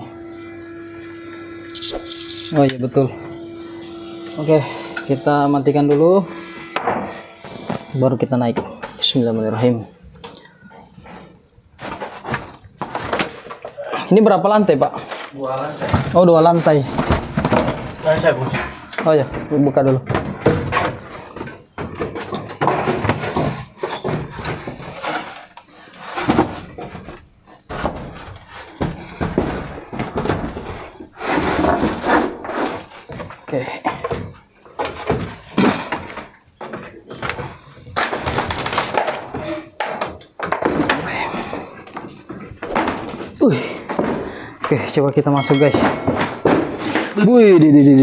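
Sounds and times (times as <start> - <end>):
loose boards scraping: 0.3 - 9.9, 15.0 - 48.0.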